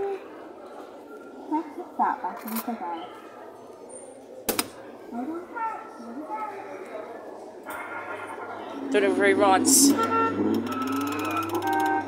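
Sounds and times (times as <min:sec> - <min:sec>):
faint background voices: 0:00.0 - 0:10.8.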